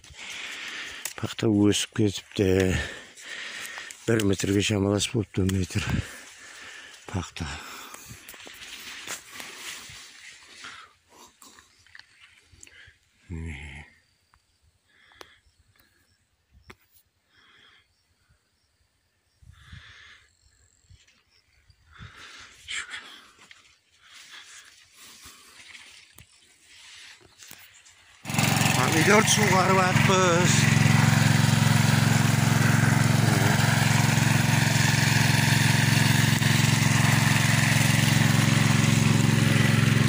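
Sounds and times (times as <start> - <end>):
person's voice: 1.2 - 3.0, 28.7 - 30.8, 33.1 - 33.7
soft outdoor noises: 20.1 - 28.2.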